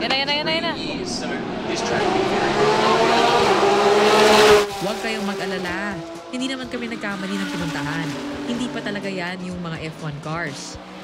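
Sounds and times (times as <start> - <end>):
race car passing at speed: 0.4 - 11.0.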